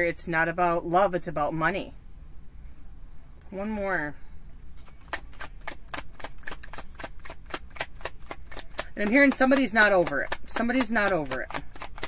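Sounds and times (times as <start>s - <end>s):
cards being shuffled: 4.8s - 12.0s.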